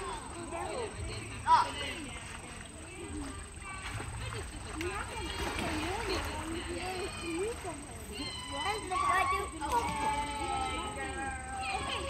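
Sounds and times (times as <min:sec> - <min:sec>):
children calling out: 0:06.6 - 0:12.0.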